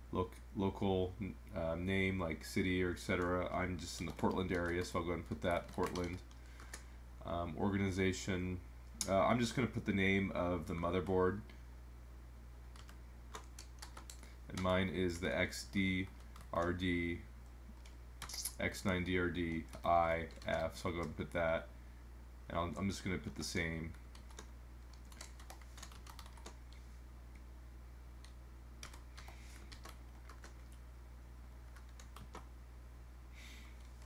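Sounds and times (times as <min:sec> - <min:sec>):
keyboard keystrokes: 0:24.2 - 0:26.6, 0:28.2 - 0:30.8.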